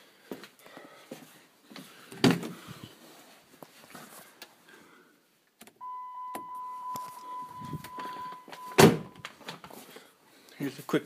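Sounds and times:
high electronic beep: 5.8 - 9.3.

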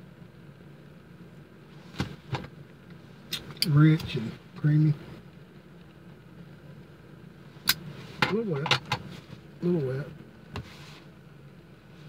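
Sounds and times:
vehicle cabin hum: 0.0 - 12.0.

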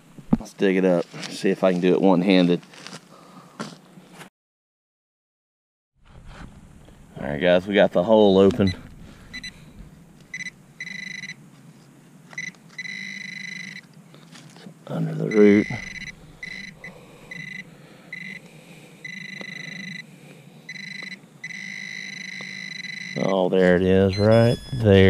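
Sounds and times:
person speaking: 7.4 - 8.9, 14.9 - 17.5, 23.2 - 25.0
metal detector alert tone: 8.2 - 9.6, 10.3 - 11.4, 12.3 - 13.9, 15.3 - 18.4, 19.0 - 20.0, 20.7 - 25.0.

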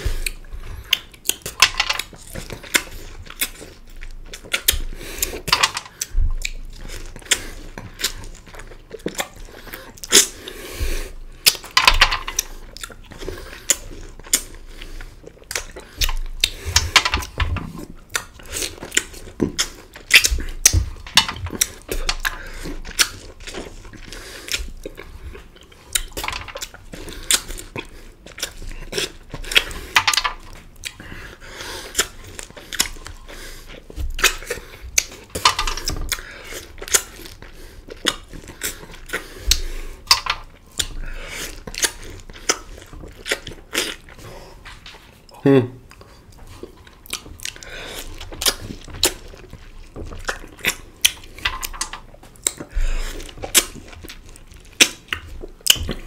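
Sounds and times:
wet biting and chewing: 0.0 - 44.4, 45.9 - 56.0.

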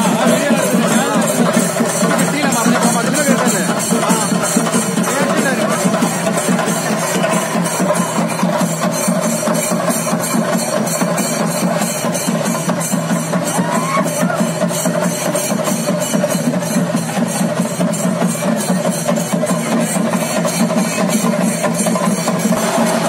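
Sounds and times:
cymbals ringing: 0.0 - 23.0
fast drumming: 0.0 - 23.0.

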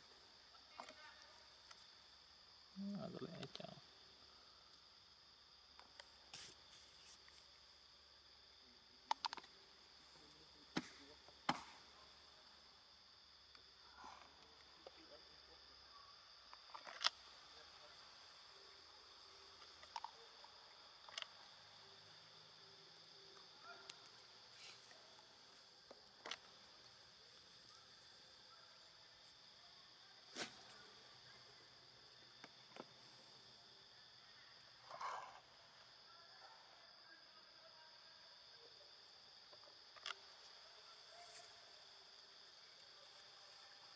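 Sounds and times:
insect chorus drone: 0.0 - 43.9.

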